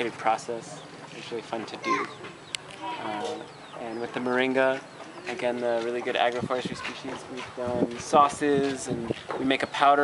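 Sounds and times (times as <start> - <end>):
chicken clucking: 0.0 - 10.0.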